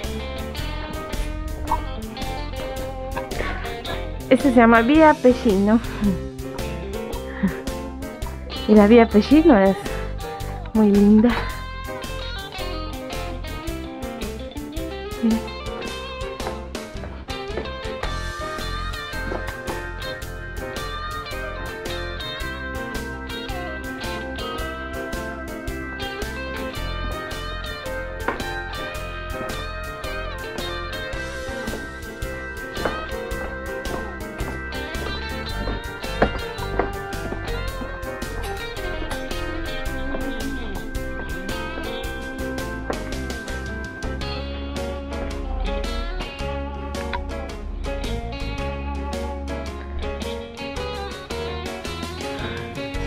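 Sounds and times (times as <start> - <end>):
guitar-led instrumental music: 0.0 - 53.0.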